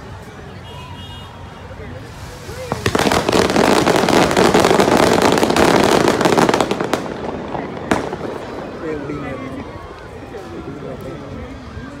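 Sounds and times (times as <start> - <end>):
firework fountain crackling hiss: 0.1 - 11.5
sharp firework crack: 2.3 - 9.1.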